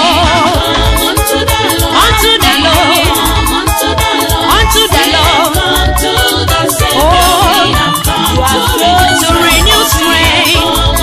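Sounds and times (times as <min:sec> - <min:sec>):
gospel praise music: 0:00.0 - 0:11.0.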